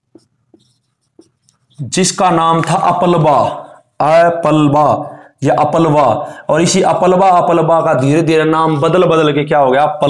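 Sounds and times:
marker squeaking on whiteboard: 0:00.0 - 0:02.8.

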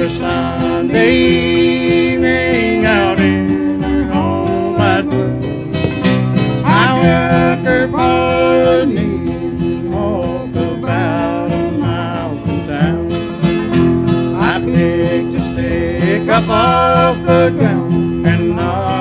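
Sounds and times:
sustained singing: 0:00.0 - 0:13.7, 0:14.3 - 0:19.0
acoustic guitars: 0:00.0 - 0:19.0
banjo: 0:00.0 - 0:19.0
upright bass: 0:00.0 - 0:19.0.

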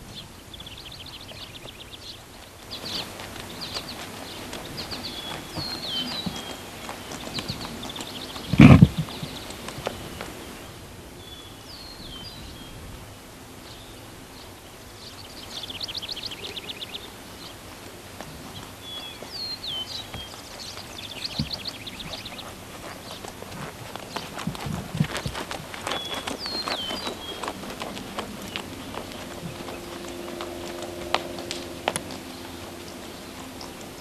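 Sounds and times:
horse hooves on dirt: 0:00.0 - 0:11.4, 0:14.4 - 0:34.0
songbirds chirping and trilling: 0:00.0 - 0:34.0.

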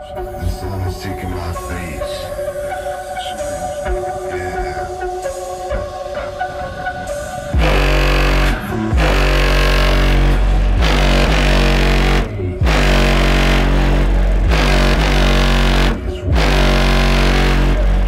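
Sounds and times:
loud electronic music with deep bass: 0:00.0 - 0:18.0.

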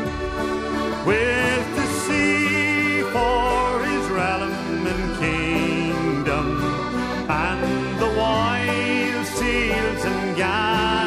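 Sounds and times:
folk band playing instrumental: 0:00.0 - 0:11.0.

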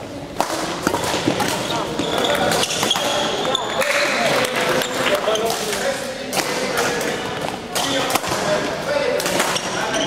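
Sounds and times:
voices in a hall: 0:00.0 - 0:10.0
racket hitting shuttlecock: 0:00.3 - 0:03.9, 0:05.5 - 0:08.6
shoes squeaking on sports floor: 0:00.8 - 0:05.8, 0:09.4 - 0:10.0.

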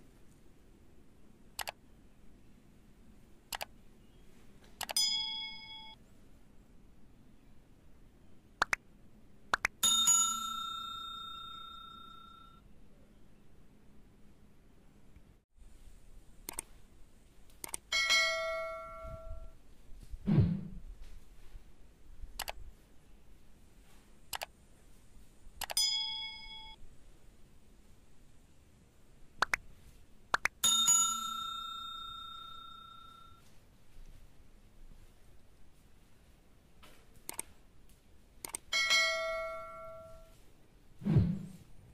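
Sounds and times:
quick clicks: 0:01.6 - 0:01.8, 0:03.5 - 0:03.7, 0:04.7 - 0:05.0, 0:08.6 - 0:08.8, 0:16.4 - 0:16.7, 0:17.5 - 0:17.9, 0:22.4 - 0:22.6, 0:24.3 - 0:24.5, 0:25.6 - 0:25.8, 0:37.2 - 0:37.6, 0:38.4 - 0:38.7
small bell ringing: 0:05.0 - 0:06.0, 0:09.8 - 0:12.6, 0:17.9 - 0:19.5, 0:25.8 - 0:26.8, 0:30.6 - 0:33.4, 0:38.7 - 0:40.4.

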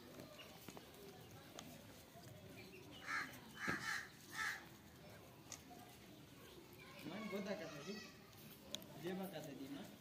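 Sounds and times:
harsh caw-like bird calls: 0:03.0 - 0:04.7.

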